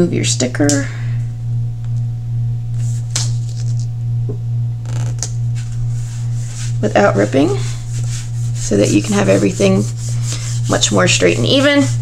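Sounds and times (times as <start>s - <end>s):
low background hum: 0.0s - 12.0s
paper rustling: 2.8s - 3.9s.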